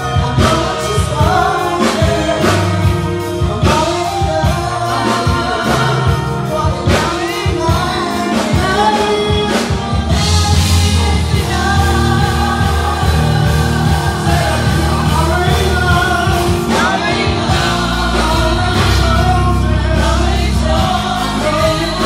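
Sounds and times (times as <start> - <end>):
bass: 0.0 - 22.0
drums: 0.0 - 22.0
group singing gospel song: 0.0 - 22.0.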